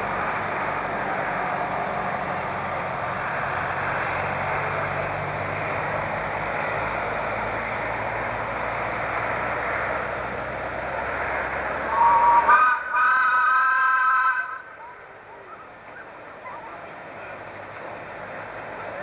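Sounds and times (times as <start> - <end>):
steam locomotive whistle: 11.9 - 14.7.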